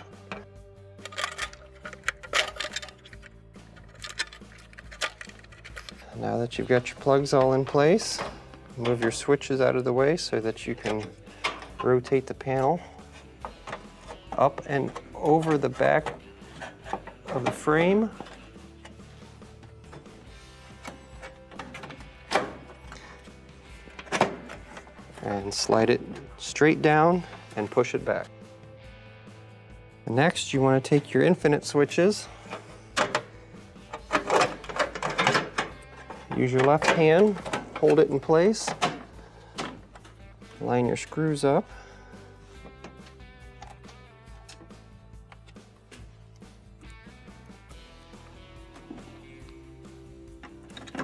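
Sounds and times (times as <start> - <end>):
faint background music: 0.0 - 51.0
plastic connectors clicking and rattling: 0.3 - 6.1, 32.4 - 40.2.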